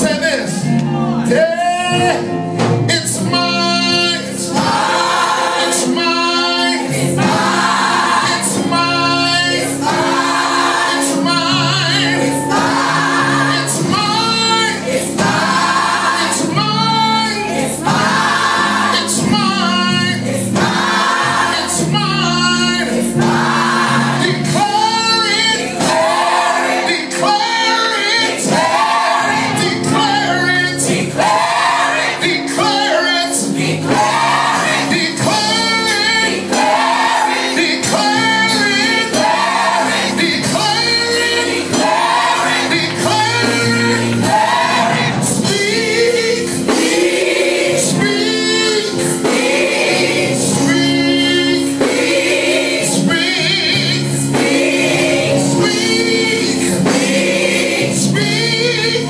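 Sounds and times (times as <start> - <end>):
gospel choir singing: 0.0 - 59.0
instrumental accompaniment: 0.0 - 59.0.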